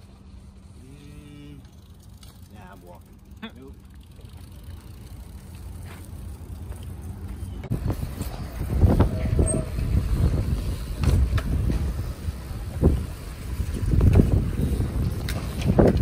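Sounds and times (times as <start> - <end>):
wind noise on microphone: 7.6 - 16.0.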